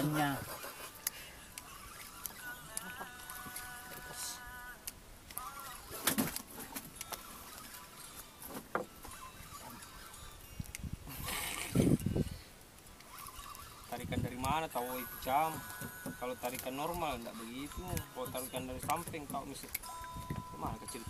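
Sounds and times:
wordless voices: 0.0s - 6.1s, 13.9s - 19.7s.

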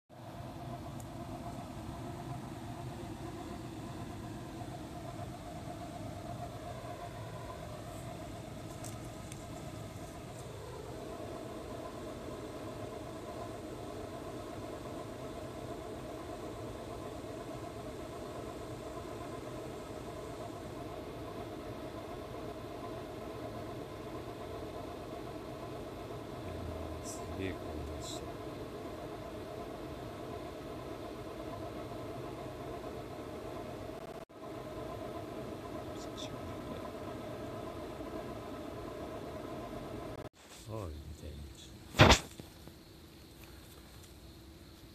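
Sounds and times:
motor humming at idle: 0.1s - 40.2s.

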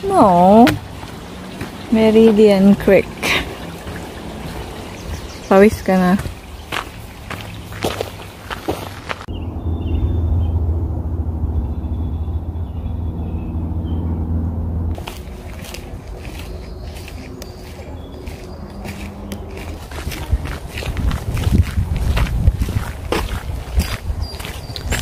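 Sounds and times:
low droning hum: 0.0s - 23.9s
footsteps on gravel: 0.1s - 9.3s, 15.0s - 25.0s.

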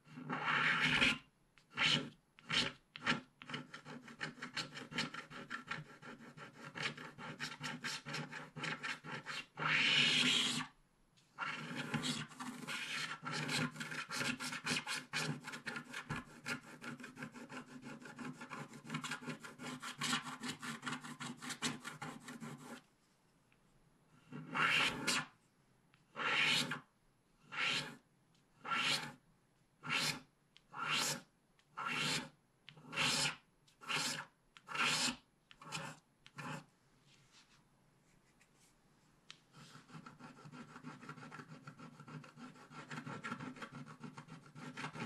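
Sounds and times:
stylus scratching card: 0.2s - 10.7s, 11.4s - 22.8s, 24.3s - 25.3s, 26.1s - 26.8s, 27.4s - 28.0s, 28.6s - 29.2s, 29.8s - 36.7s, 39.5s - 45.0s.

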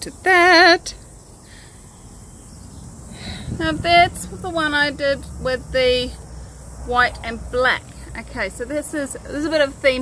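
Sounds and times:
faint hiss: 0.3s - 4.0s.

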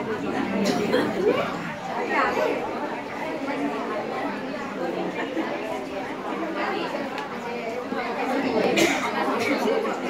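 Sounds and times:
women chattering: 0.0s - 10.0s.

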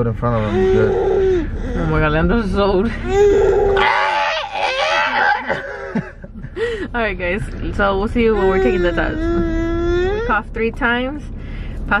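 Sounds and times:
person laughing: 4.8s - 6.9s.

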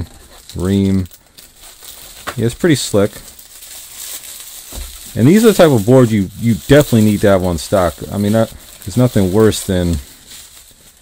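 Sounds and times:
bubble wrap crinkling: 0.0s - 11.0s.

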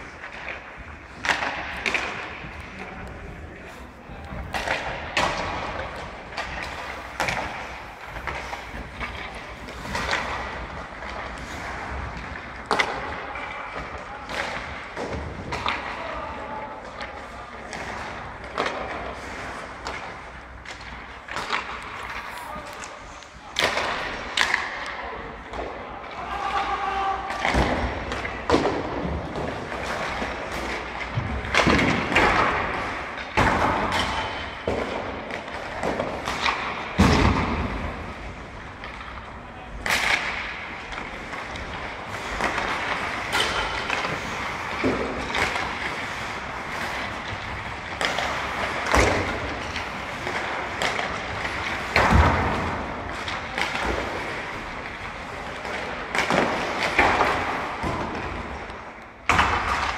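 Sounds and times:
hockey sticks and pucks cracking: 0.0s - 59.9s
players' voices: 0.0s - 59.9s.

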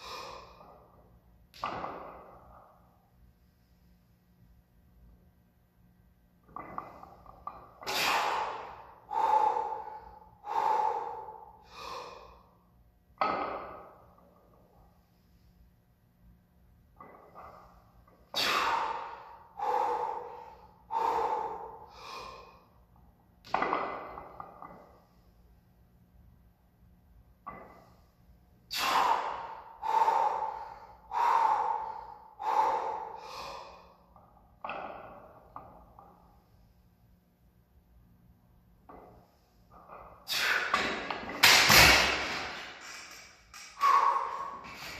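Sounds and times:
person breathing hard: 0.0s - 0.8s, 7.9s - 12.6s, 18.4s - 22.8s, 28.7s - 34.2s, 42.1s - 44.9s.

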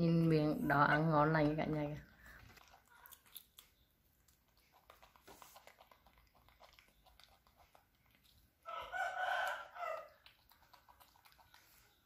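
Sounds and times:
monkey nibbling cauliflower: 1.6s - 12.0s
rooster crowing: 8.6s - 10.2s.

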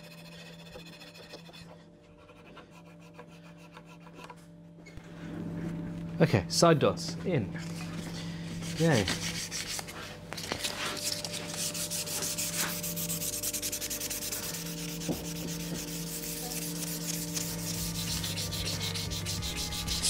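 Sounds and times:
steady low hum: 0.0s - 20.0s
sanding wood by hand: 10.9s - 20.0s.

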